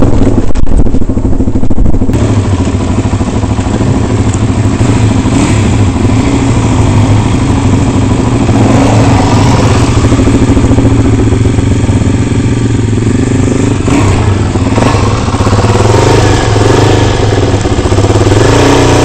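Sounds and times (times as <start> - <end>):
motorbike engine at low revs: 0.0 - 19.0.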